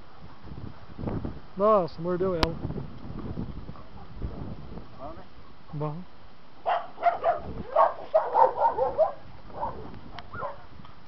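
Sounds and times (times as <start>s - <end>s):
dog barking: 6.6s - 10.7s.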